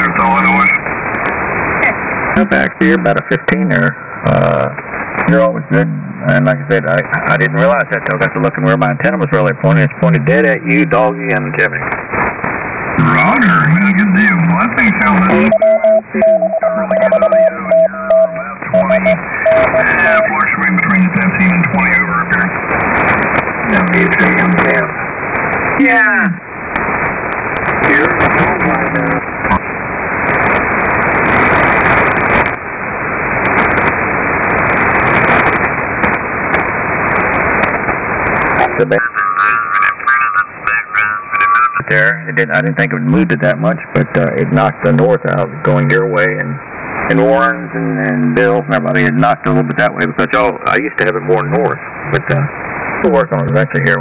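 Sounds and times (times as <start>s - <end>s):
radio band noise: 0.0s - 54.0s
steady low hum: 0.0s - 54.0s
faint garbled voice: 2.4s - 11.9s, 13.0s - 22.5s, 27.8s - 29.6s, 38.6s - 54.0s
morse code tone: 15.2s - 22.2s.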